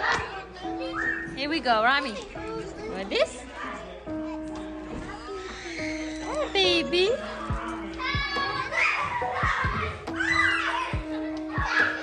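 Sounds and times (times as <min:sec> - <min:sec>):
children calling out and playing: 0:00.0 - 0:01.4, 0:02.0 - 0:12.0.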